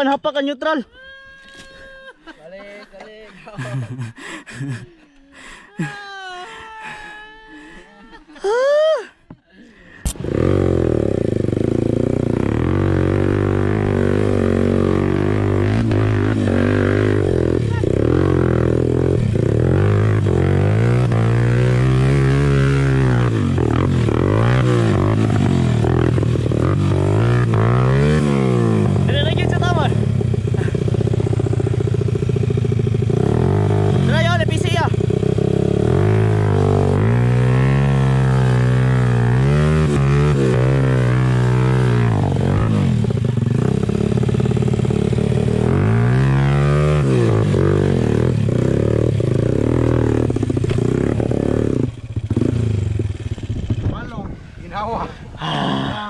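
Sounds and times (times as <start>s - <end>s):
dirt bike engine revving: 10.1s - 54.1s.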